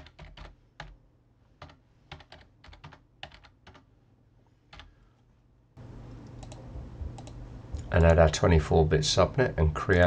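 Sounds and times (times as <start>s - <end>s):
computer keyboard typing: 0.0s - 1.0s, 1.6s - 3.9s, 4.7s - 4.9s, 6.2s - 8.3s.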